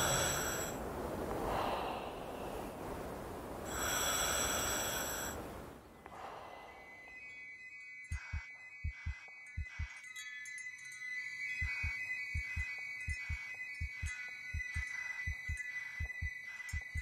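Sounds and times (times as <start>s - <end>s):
high chiming tones: 6.5s - 17.0s
heartbeat thumps: 8.1s - 10.0s, 11.6s - 17.0s.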